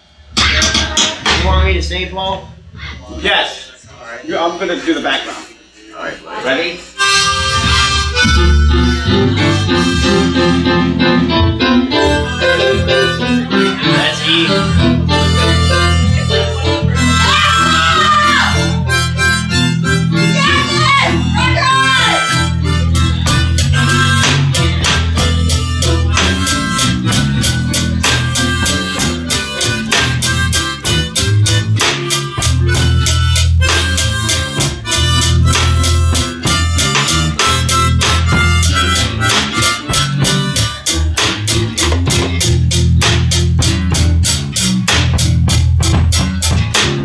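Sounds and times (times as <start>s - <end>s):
drum kit: 0.0s - 3.0s, 7.0s - 47.0s
harmonica with bent notes: 4.2s - 46.7s
electric bass guitar: 7.0s - 47.0s
low accompaniment: 7.0s - 47.0s.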